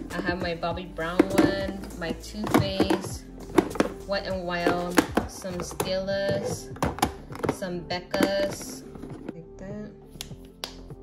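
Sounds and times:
music playing: 0.0s - 11.0s
plastic compacts clicking: 1.2s - 9.4s.

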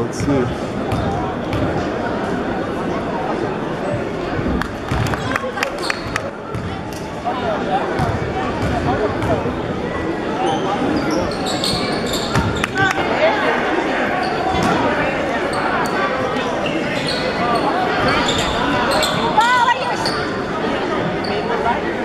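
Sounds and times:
crowd chatter: 0.0s - 22.0s
sneakers squeaking: 4.8s - 7.1s, 10.4s - 13.0s, 14.2s - 20.5s.

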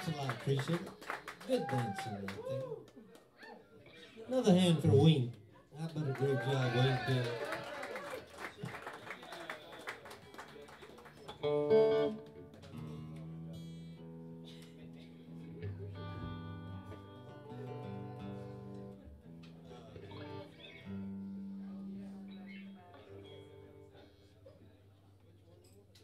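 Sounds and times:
guitars picking single notes: 11.3s - 25.3s.

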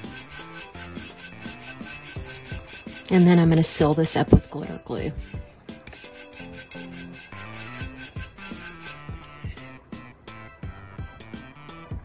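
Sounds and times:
brush sweeping glitter: 0.0s - 9.1s
soft background music: 0.0s - 12.0s.

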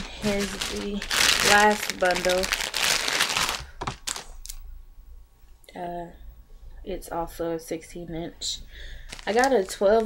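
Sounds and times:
plastic package crinkling: 0.0s - 4.6s, 9.0s - 10.0s.

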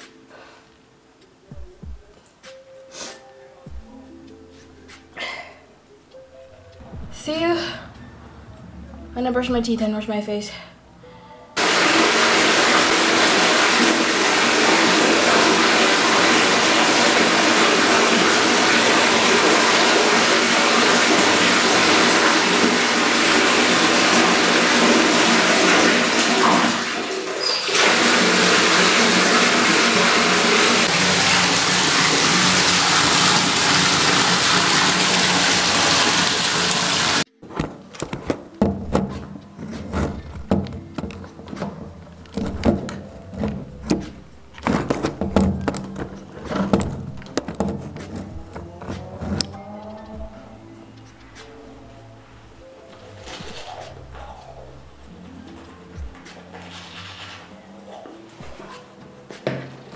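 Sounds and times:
tap water running into sink: 11.6s - 37.2s
knocks and handling sounds: 37.4s - 50.0s.

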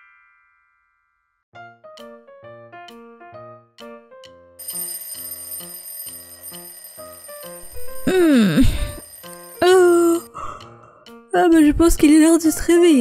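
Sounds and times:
phone alarm ringtone: 4.6s - 10.3s
person groaning: 8.0s - 8.9s.

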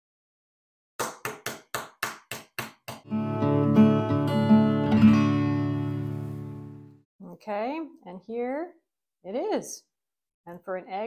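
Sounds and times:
acoustic guitar chords ringing: 3.1s - 7.0s
acoustic guitar strumming: 3.1s - 7.0s.

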